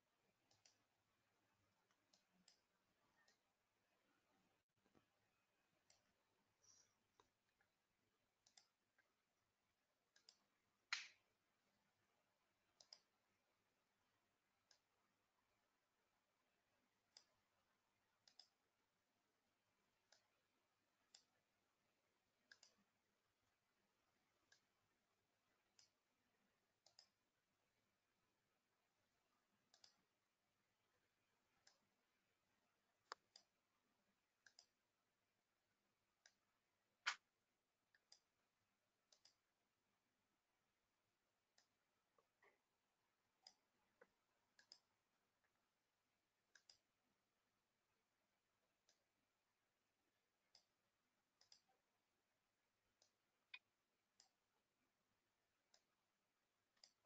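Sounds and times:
computer mouse clicks: 0.4s - 0.9s, 1.8s - 3.5s, 5.8s - 7.7s, 8.4s - 9.1s, 10.1s - 11.2s, 12.8s - 13.2s, 17.1s - 17.4s, 18.2s - 18.7s, 20.1s - 20.4s, 21.1s - 21.4s, 22.4s - 22.9s, 24.4s - 24.7s, 25.7s - 26.0s, 26.8s - 27.2s, 29.6s - 30.1s, 31.6s - 31.9s, 33.0s - 33.6s, 34.4s - 34.8s, 37.0s - 37.3s, 37.9s - 38.3s, 39.1s - 39.5s, 43.4s - 45.0s, 46.5s - 46.9s, 50.5s - 50.8s, 51.4s - 51.8s, 53.0s - 53.6s, 54.2s - 54.4s, 56.7s - 57.0s.

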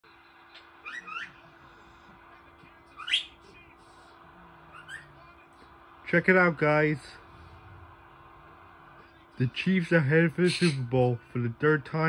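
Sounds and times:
faint steady hum: 0.1s - 12.0s.

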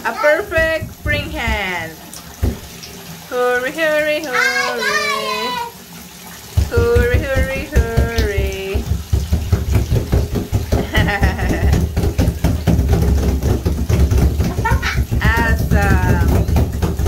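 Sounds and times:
children's voices: 0.0s - 0.8s, 4.2s - 5.8s
wet hands slapping bathtub wall: 0.0s - 3.0s, 6.2s - 17.0s.

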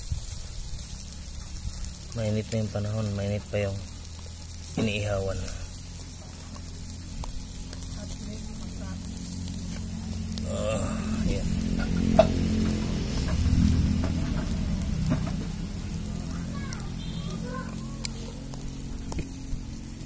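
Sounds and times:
chicken sizzling on grill: 0.0s - 20.0s
steady low hum: 0.0s - 20.0s
metal tongs turning meat: 0.6s - 19.7s.

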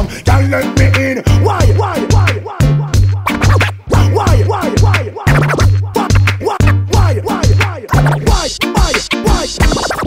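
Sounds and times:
hip hop bass beat: 0.0s - 10.0s
turntable scratching: 0.4s - 10.0s.

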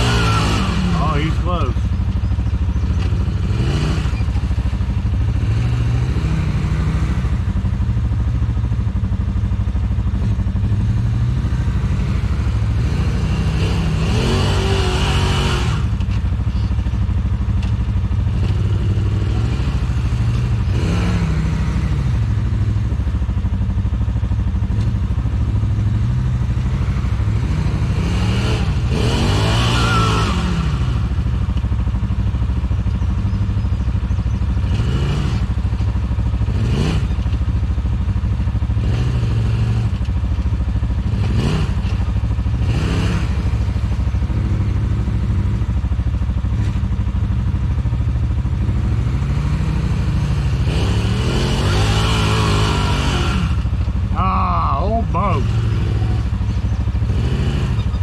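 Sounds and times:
engine revving: 0.0s - 33.7s, 34.4s - 58.0s
engine idling: 0.0s - 58.0s.

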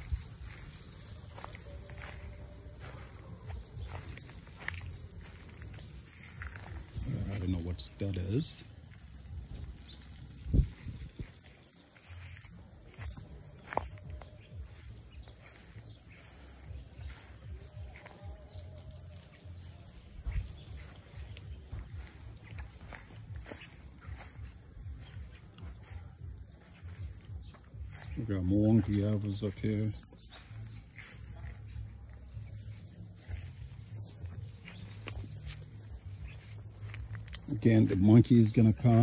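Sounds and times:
insects chirping: 0.0s - 39.0s.

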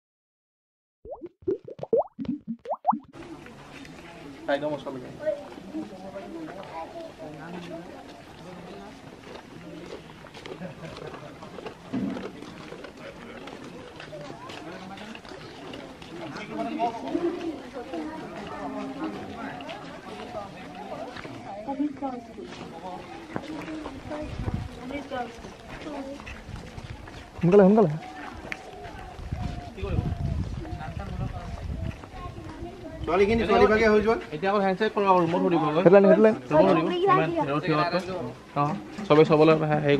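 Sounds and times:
short popping notes sliding upward: 1.1s - 3.2s
children's voices: 5.2s - 8.0s, 15.6s - 20.2s, 21.4s - 27.2s, 31.7s - 33.4s
footsteps on dirt path: 22.4s - 32.6s.

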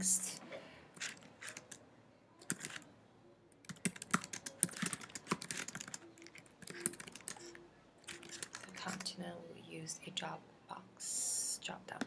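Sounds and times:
typing on computer keyboard: 1.0s - 1.8s, 2.4s - 2.8s, 3.6s - 9.1s.

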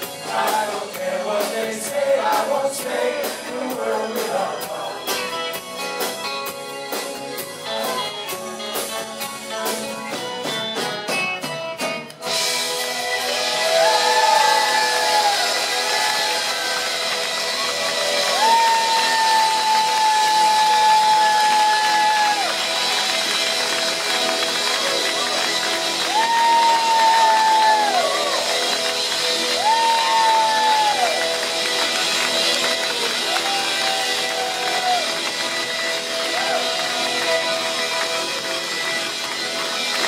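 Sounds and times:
crowd cheering and shouting: 0.0s - 8.9s, 12.2s - 40.0s
live band playing: 0.0s - 40.0s.

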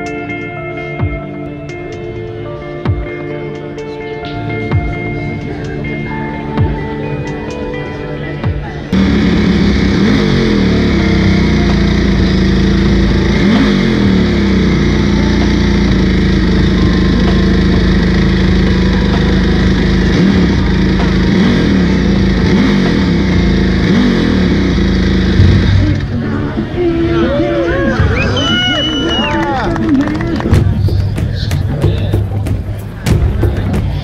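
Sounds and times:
motorcycle engine revving: 8.9s - 34.0s.

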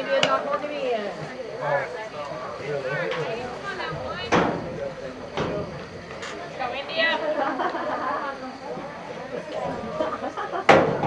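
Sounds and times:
spectators' voices: 0.0s - 11.0s
sharp knocks: 4.3s - 4.7s, 10.7s - 11.0s.

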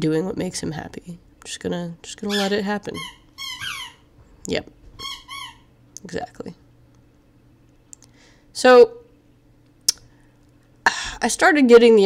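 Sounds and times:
person speaking: 0.0s - 3.2s, 4.4s - 4.8s, 5.9s - 6.7s
faint steady hum: 0.0s - 12.0s.

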